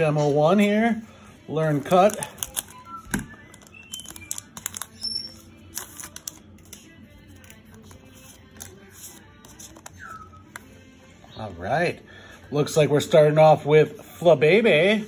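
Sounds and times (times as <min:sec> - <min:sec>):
foil wrapper crinkling: 0:01.6 - 0:10.0.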